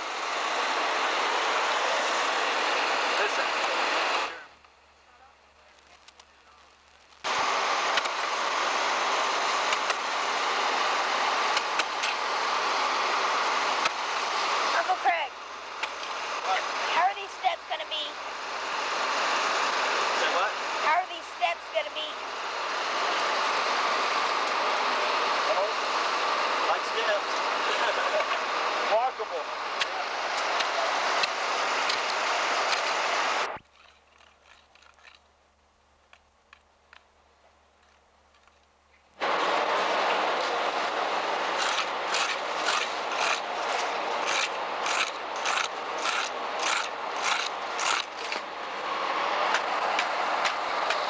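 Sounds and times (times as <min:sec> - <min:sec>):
steady loud hiss: 0:00.0 - 0:33.6, 0:39.2 - 0:51.0
metal straightedge scraping concrete: 0:41.6 - 0:48.4.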